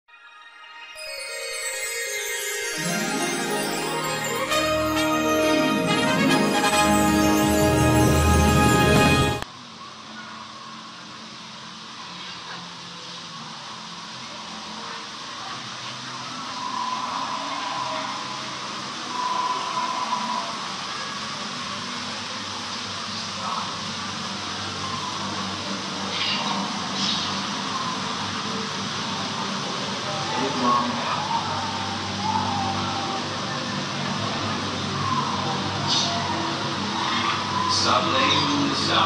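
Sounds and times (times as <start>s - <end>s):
short higher sounds: 1.0s - 9.4s.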